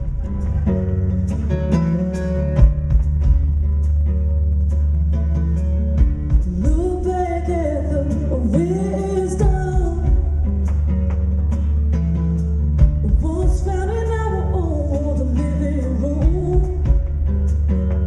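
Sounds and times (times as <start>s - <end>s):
low bass tone: 0.0s - 18.0s
picked guitar notes: 0.0s - 18.0s
person singing: 6.4s - 11.1s, 13.0s - 17.3s.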